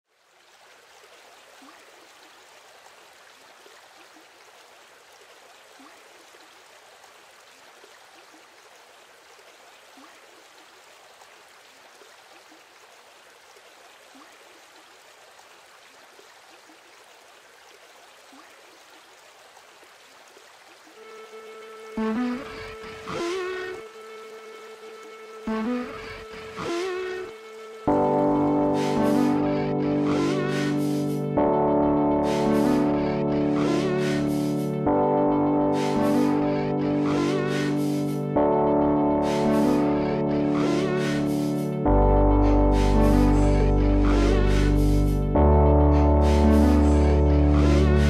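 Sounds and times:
held musical tone: 21.3s - 48.0s.

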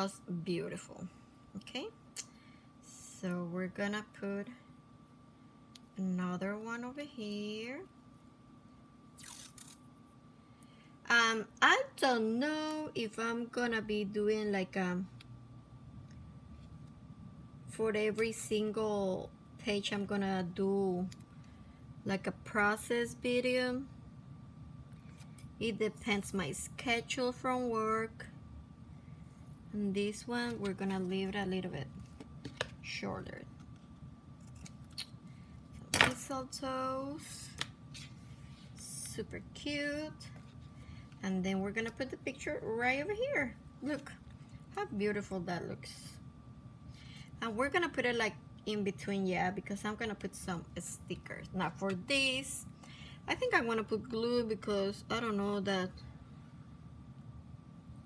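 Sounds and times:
faint hum: 0.0s - 58.0s.

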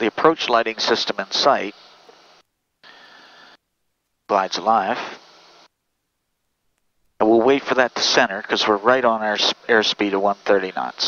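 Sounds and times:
faint intercom hiss: 0.0s - 3.6s, 4.3s - 5.7s, 7.2s - 11.0s
person speaking: 4.3s - 5.2s.

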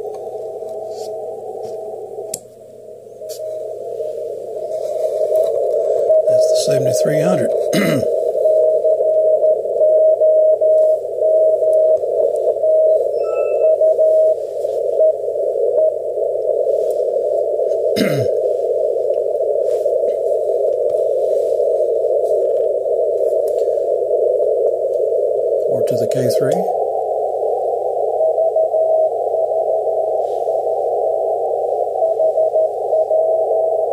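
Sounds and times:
receiver hiss: 0.0s - 33.9s
morse code tone: 5.9s - 16.0s.

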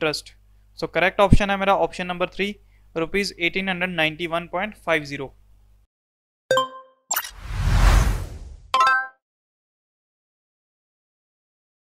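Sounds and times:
whoosh: 7.3s - 8.7s.

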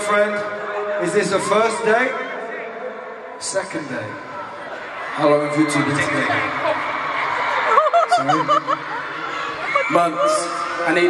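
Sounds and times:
arena crowd noise: 0.0s - 11.0s
laughter in wavering bursts: 7.5s - 9.9s.

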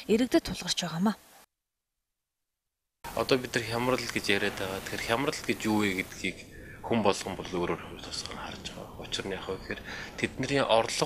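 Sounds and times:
man talking: 3.1s - 11.0s.

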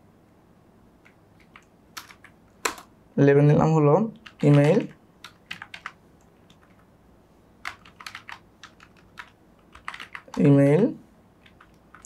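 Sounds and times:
keyboard key clicks: 1.0s - 2.9s.

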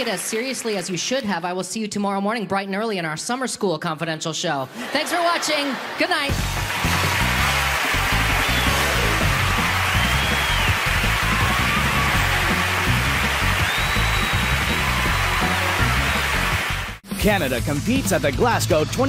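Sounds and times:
audience applauding and cheering: 0.0s - 1.0s, 6.2s - 17.0s
theme music with bass line: 6.3s - 19.0s.

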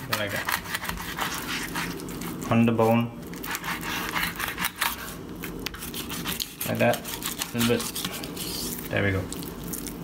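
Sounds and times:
knife scraping over fish bones: 0.0s - 8.9s.

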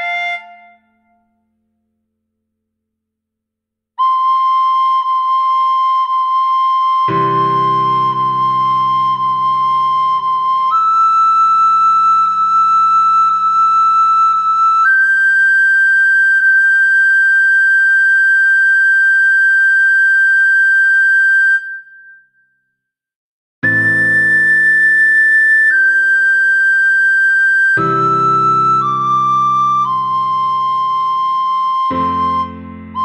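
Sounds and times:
recorder playing high note: 0.0s - 0.9s.

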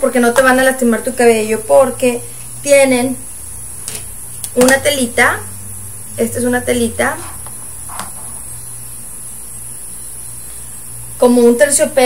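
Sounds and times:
constant hiss: 0.0s - 12.0s
electrical hum: 0.0s - 12.0s
faint high whine: 0.0s - 12.0s.

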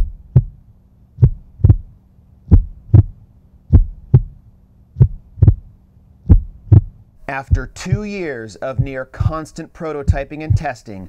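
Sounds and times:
heartbeat thumps: 0.0s - 0.6s, 1.2s - 4.4s, 5.0s - 10.8s
low hum: 0.0s - 9.4s.

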